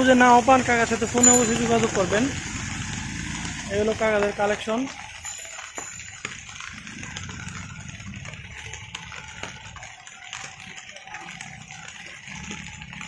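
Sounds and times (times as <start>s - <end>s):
traffic rumble on a wet road: 0.0s - 13.0s.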